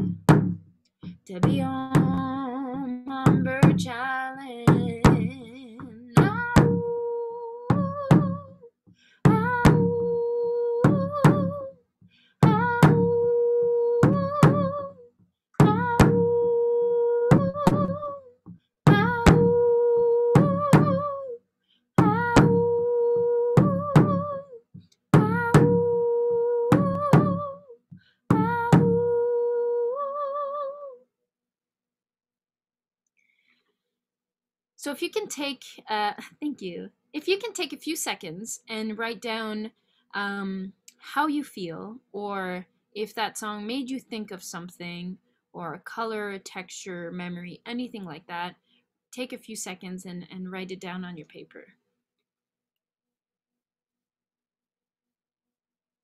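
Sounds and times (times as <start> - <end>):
frame hand drum beats: 0.0 - 4.0, 4.7 - 6.9, 7.7 - 8.5, 9.3 - 10.1, 10.8 - 11.6, 12.4 - 13.3, 15.6 - 16.4, 18.9 - 19.7, 20.4 - 21.1, 22.0 - 26.0, 26.7 - 27.5, 28.3 - 29.2
woman humming a melody: 1.2 - 8.7, 9.3 - 11.7, 12.4 - 15.0, 15.6 - 18.3, 18.9 - 21.4, 22.0 - 24.6, 25.2 - 31.0.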